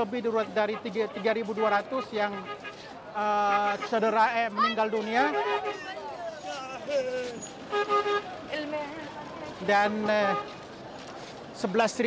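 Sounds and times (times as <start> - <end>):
crowd voices: 0.0 - 12.0
ambulance horn toot: 5.2 - 6.0.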